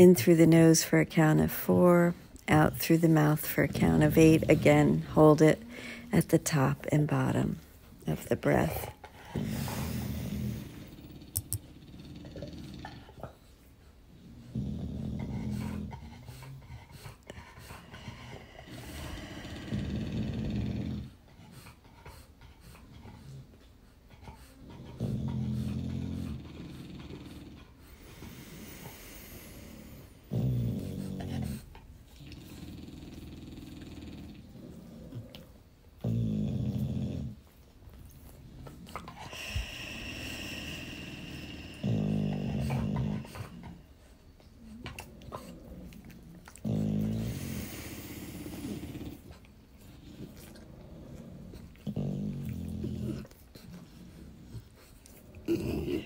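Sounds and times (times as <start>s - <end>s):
dog snoring: 0.0s - 56.0s.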